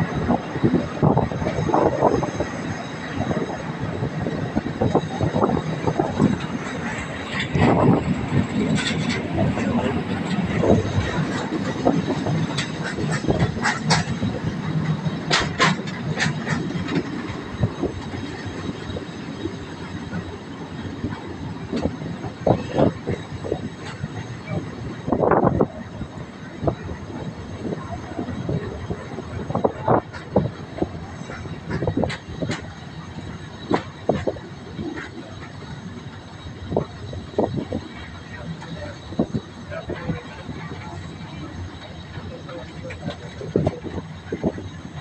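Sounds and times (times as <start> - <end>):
train rumbling on track: 0.0 - 45.0
wheels knocking on rails: 0.0 - 45.0.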